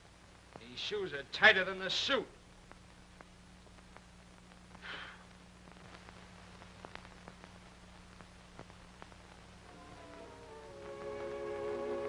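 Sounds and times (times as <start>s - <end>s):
film soundtrack hiss: 0.0s - 12.0s
steady hum: 0.0s - 12.0s
faint clicks: 2.6s - 9.5s.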